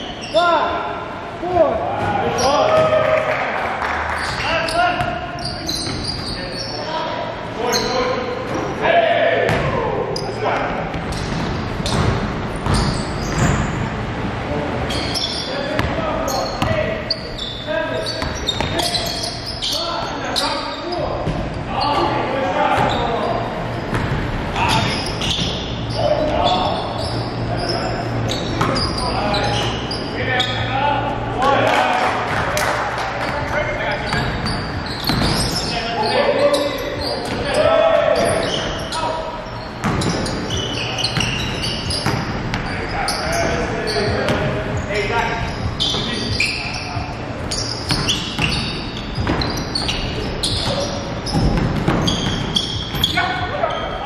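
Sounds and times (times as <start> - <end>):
basketball bouncing on gym floor: 9.5 - 9.8, 10.5 - 13.9, 15.7 - 17.0, 18.1 - 19.0, 21.2 - 21.6, 22.7 - 23.1, 23.9 - 26.7, 28.4 - 29.0, 33.2 - 35.7, 39.8 - 42.7, 44.1 - 44.9, 45.6 - 53.5.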